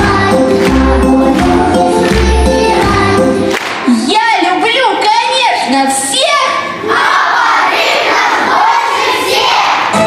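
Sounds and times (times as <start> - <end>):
children's voices: 4.9 - 10.0.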